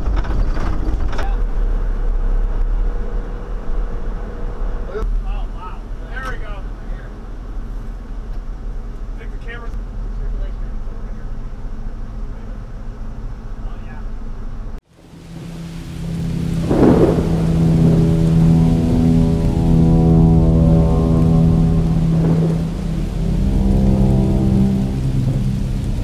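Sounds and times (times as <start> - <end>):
rain: 0.0 - 26.0
thunder rolling: 14.9 - 26.0
sustained synth chord: 15.0 - 26.0.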